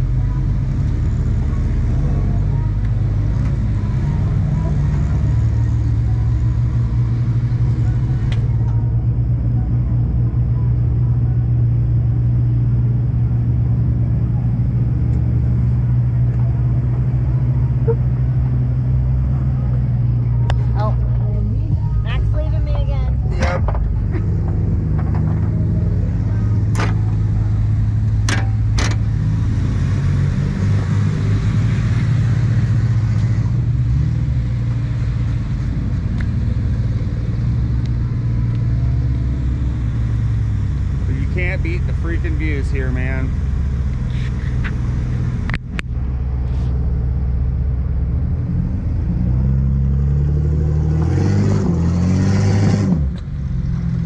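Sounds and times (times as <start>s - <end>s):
engine running at low speed: 0.0s - 54.0s.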